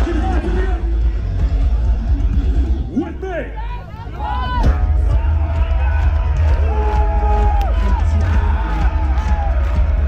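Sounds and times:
low rumble from stage speakers: 0.0 - 10.0
people shouting: 3.6 - 10.0.

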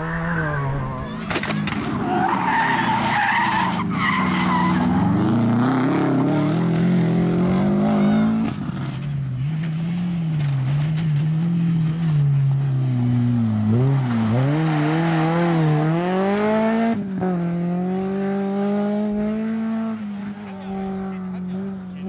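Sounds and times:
tyres skidding on loose ground: 0.0 - 17.0
rally car engine revving: 0.0 - 22.0
tyre squeal: 1.9 - 5.2.

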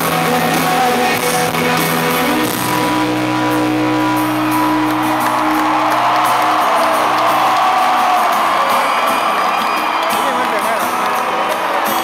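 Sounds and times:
rock band sustained chord: 0.0 - 9.2
crowd cheering and whooping: 2.3 - 12.0.

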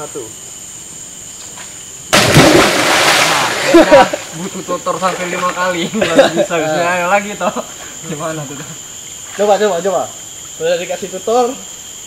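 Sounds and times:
high insect buzz: 0.0 - 12.0
body splashing into water: 2.1 - 4.4
water churning: 2.2 - 4.3.

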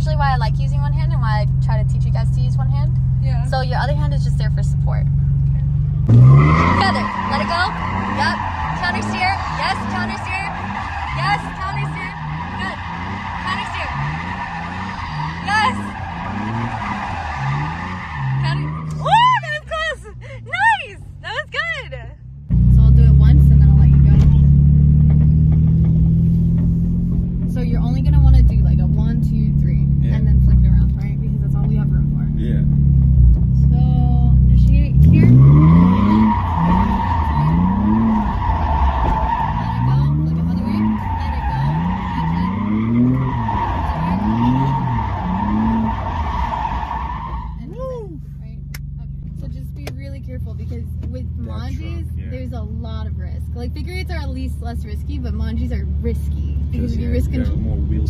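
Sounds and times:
tires squealing: 0.0 - 22.0, 22.7 - 58.0
car engine revving: 0.0 - 58.0
tyres screeching on pavement: 6.1 - 21.9, 35.0 - 49.0.

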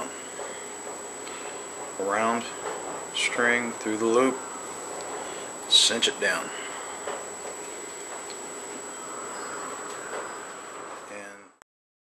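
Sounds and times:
thin high whine: 0.0 - 11.6.

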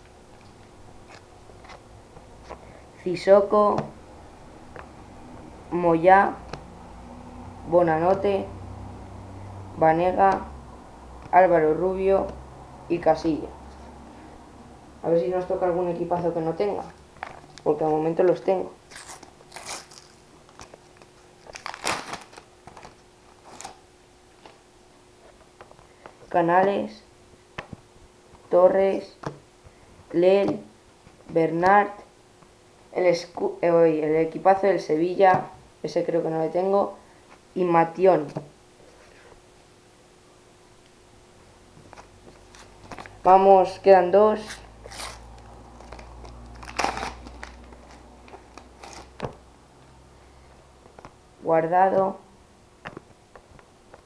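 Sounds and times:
packet being torn open: 18.9 - 20.8, 21.4 - 23.8, 45.8 - 49.2
wrapper crinkling: 18.9 - 23.8, 44.5 - 49.3
wrapper tearing: 18.9 - 23.8, 44.5 - 49.2.

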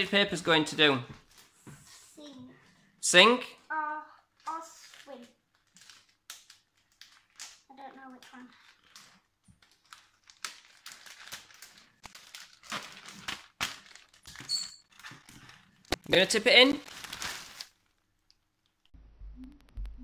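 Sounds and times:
plastic bag crinkling: 4.4 - 18.8.

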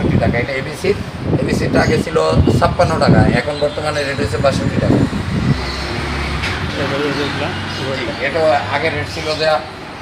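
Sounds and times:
man's voice: 0.0 - 5.1
low rumble of road traffic: 0.0 - 10.0.

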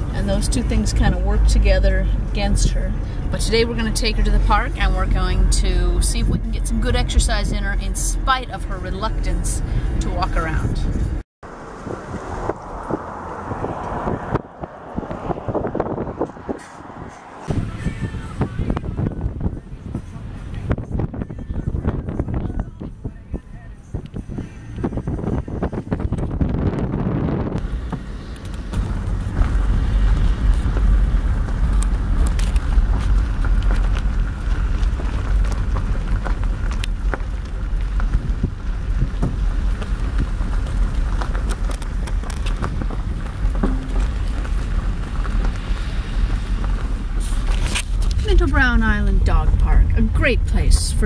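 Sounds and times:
car road rumble: 0.0 - 51.0
wind noise: 0.0 - 51.0.

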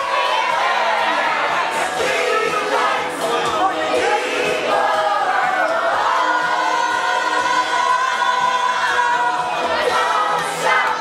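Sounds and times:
group of people singing: 0.0 - 11.0.

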